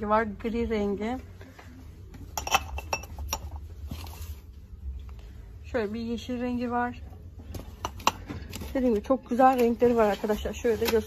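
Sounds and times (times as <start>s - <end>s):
glass plates clinking: 2.3s - 3.6s.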